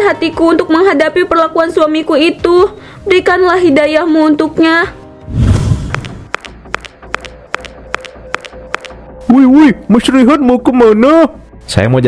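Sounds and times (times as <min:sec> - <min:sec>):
quiet background music: 0:00.0 - 0:12.0
cartoon footstep ticks: 0:05.9 - 0:09.0.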